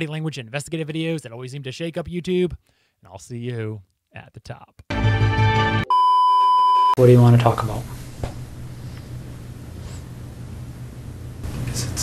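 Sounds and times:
high-pitched electronic beep: 5.9 - 7.0.

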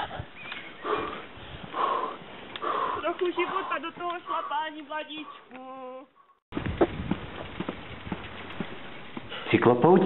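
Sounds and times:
man breathing hard: 0.8 - 3.0.

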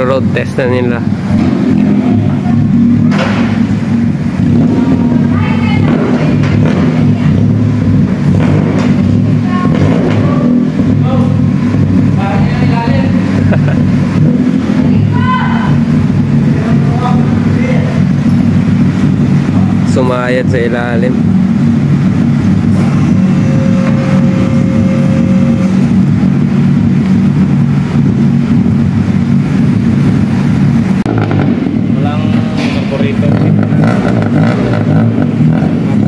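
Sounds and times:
car engine idling: 0.0 - 36.0.

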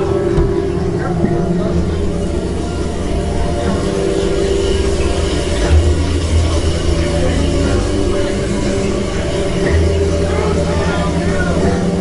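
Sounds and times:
low droning rumble: 0.0 - 12.0.

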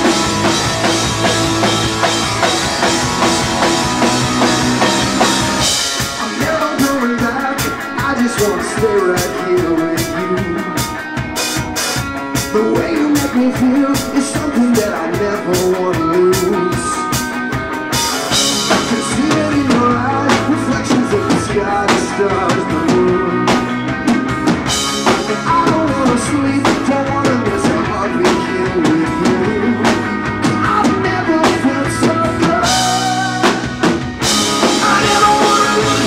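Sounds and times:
drums hitting hard: 0.0 - 36.0
live rock band playing: 0.0 - 36.0.

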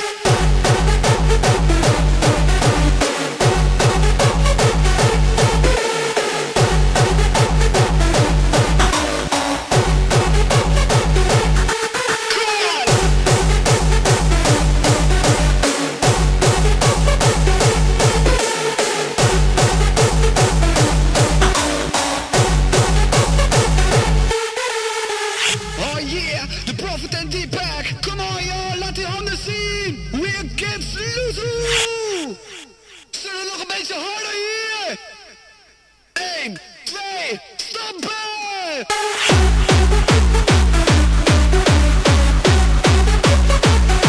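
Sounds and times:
heavy kick drum: 0.3 - 5.8, 6.6 - 11.7, 12.9 - 18.4, 19.2 - 24.3, 39.3 - 44.0.

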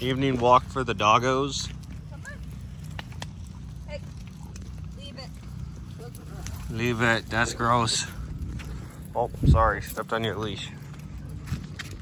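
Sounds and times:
footsteps on asphalt: 0.0 - 12.0
low steady rumble: 0.0 - 12.0.

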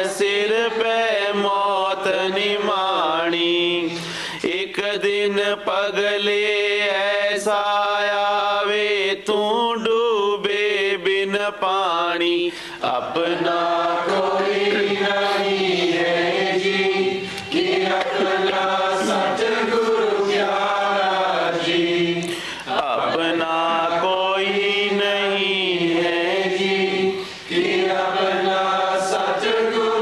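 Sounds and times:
person chanting a hymn: 0.0 - 30.0.

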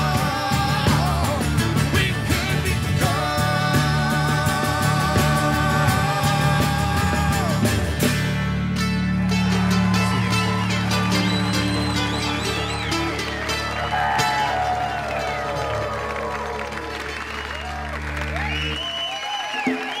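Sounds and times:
audience cheering and whistling: 9.0 - 20.0
audience applause: 9.1 - 20.0.

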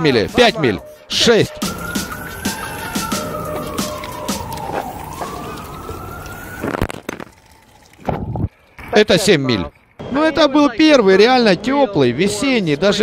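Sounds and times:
siren wailing: 0.8 - 8.5.

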